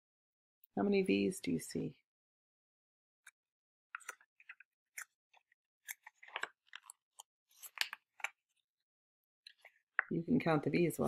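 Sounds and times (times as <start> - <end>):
book pages rustling and crackling: 4.0 - 8.6.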